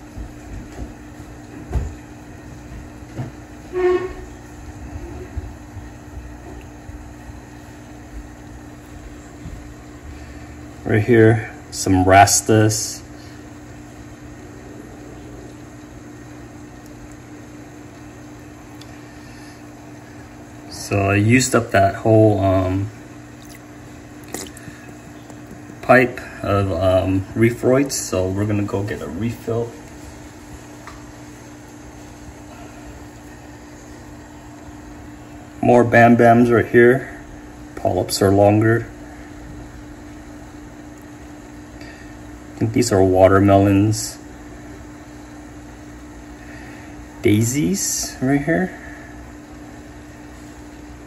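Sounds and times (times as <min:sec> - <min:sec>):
steady low hum: 0:00.0 - 0:51.0
sharp wet click: 0:23.4 - 0:24.7.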